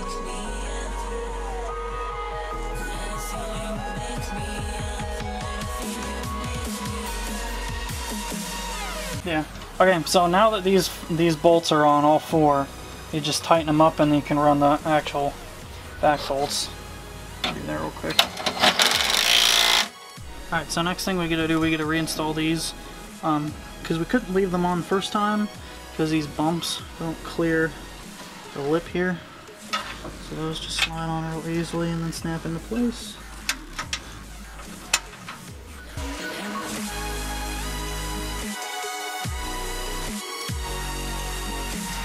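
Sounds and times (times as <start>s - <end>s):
electronic background music: 0.0s - 42.0s
cordless drill driving bolt: 18.1s - 19.9s
fitting snapping into place: 29.7s - 30.2s, 33.4s - 35.6s.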